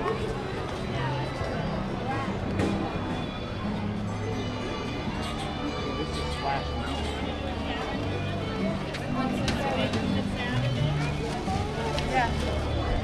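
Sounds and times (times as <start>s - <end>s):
crowd chatter: 0.0s - 13.0s
music over outdoor loudspeakers: 0.0s - 13.0s.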